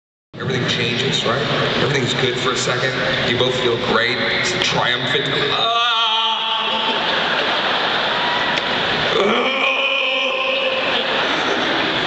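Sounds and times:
people cheering: 5.5s - 12.0s
crowd laughing and applauding: 6.5s - 12.0s.

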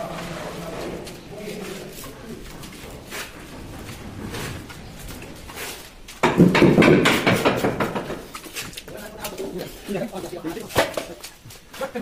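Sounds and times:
short knocks: 6.2s - 8.4s.

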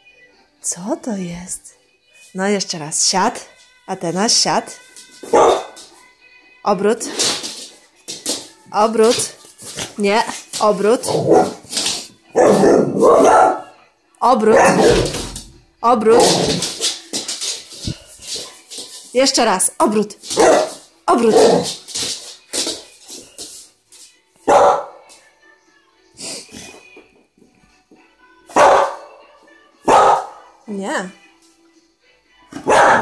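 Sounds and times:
dog barking: 5.2s - 5.8s, 11.1s - 11.6s, 12.3s - 13.8s, 14.4s - 15.2s, 20.4s - 21.8s, 24.5s - 25.0s, 28.5s - 29.2s, 29.9s - 30.5s, 32.6s - 33.0s.

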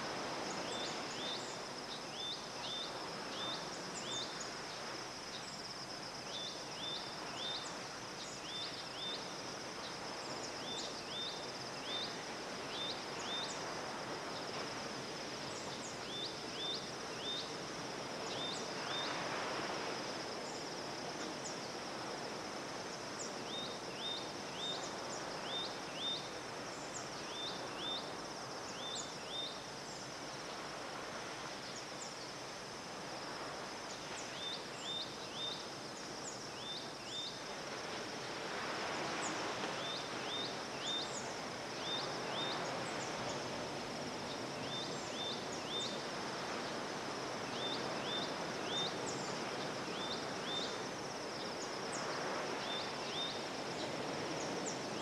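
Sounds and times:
high insect hum: 0.0s - 55.0s
surf washing on reef: 17.5s - 23.3s, 37.5s - 55.0s.

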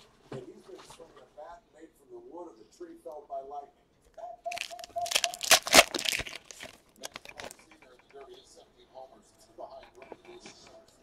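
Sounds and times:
wrapper tearing and crinkling: 4.5s - 7.6s.

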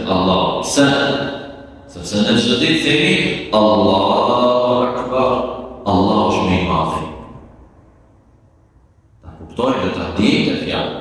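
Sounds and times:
man chanting: 0.0s - 7.4s, 9.2s - 11.0s.

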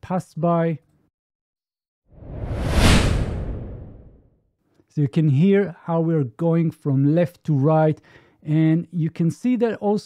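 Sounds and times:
synthesized vehicle pass-by whoosh: 2.2s - 4.2s.

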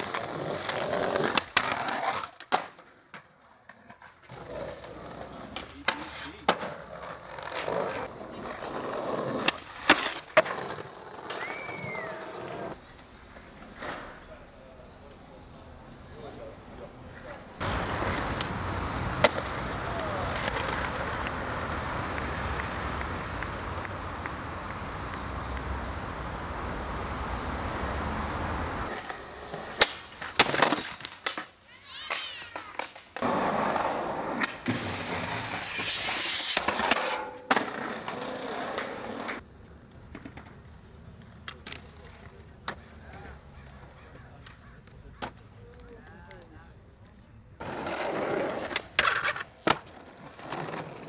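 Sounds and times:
skateboard wheels rolling on concrete: 0.0s - 51.0s
skateboard clacks: 19.2s - 26.3s, 28.6s - 33.4s.

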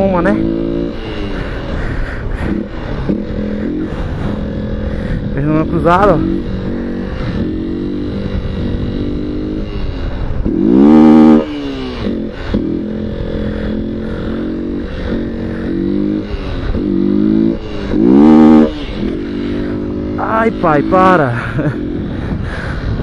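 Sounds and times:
motorcycle engine revving: 0.0s - 23.0s.

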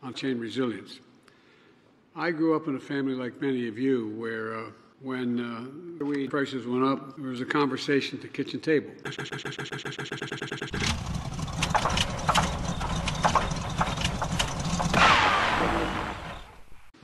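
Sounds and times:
starter cranking engine: 9.1s - 16.5s
car engine running: 10.4s - 16.7s.

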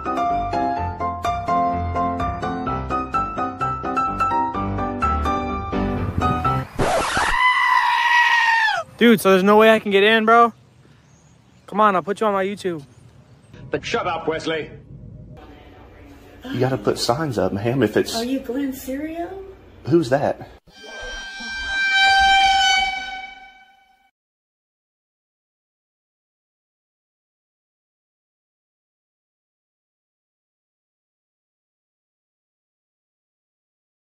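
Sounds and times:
long high cry: 7.0s - 8.9s, 20.7s - 24.0s
sustained horn-like note: 20.7s - 24.1s.

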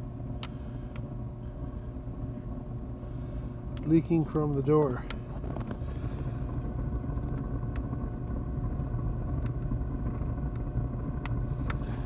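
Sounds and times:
fan humming: 0.0s - 12.0s.

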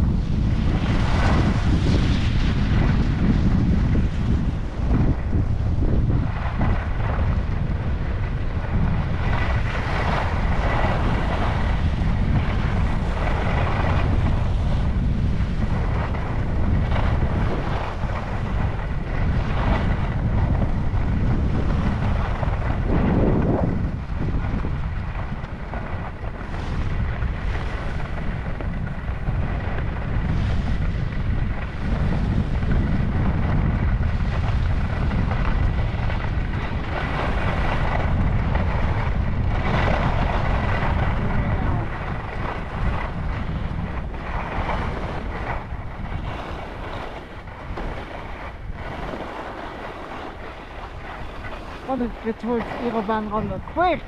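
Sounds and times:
skis scraping over snow: 0.0s - 54.0s
wind buffeting microphone: 0.0s - 54.0s.

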